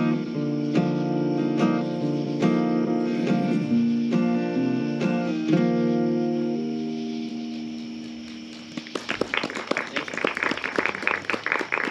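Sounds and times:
audience applauding: 8.4s - 11.9s.

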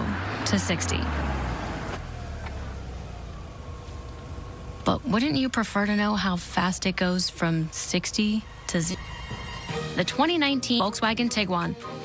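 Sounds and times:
car engine rumble: 0.0s - 11.6s.

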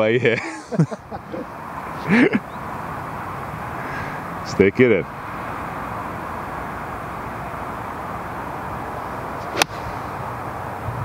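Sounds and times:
golf club striking ball: 9.4s - 10.2s.

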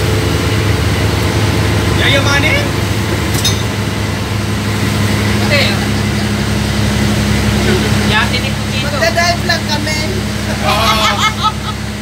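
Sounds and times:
boat engine running: 0.0s - 12.0s
voices: 7.5s - 11.8s.

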